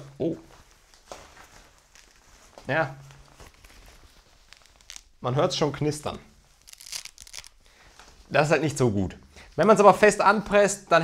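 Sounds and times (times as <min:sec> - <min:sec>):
hook-and-loop fastener crackling: 0:03.4 - 0:05.2, 0:06.6 - 0:07.6.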